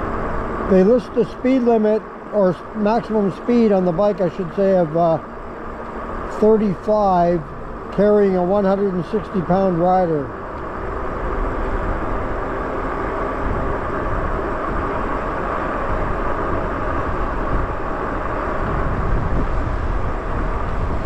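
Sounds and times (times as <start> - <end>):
bike tires rolling on pavement: 0.0 - 21.0
wind buffeting microphone: 9.5 - 21.0.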